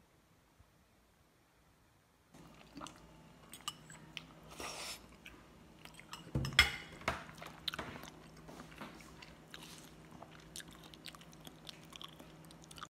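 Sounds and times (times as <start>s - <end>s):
faint chewing: 2.4s - 6.3s, 7.1s - 12.9s.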